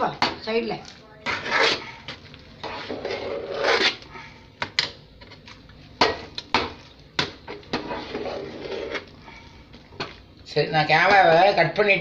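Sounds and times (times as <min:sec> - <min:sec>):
spoon scraping a metal pot: 0:01.2 - 0:01.9, 0:02.6 - 0:04.0, 0:07.7 - 0:09.1.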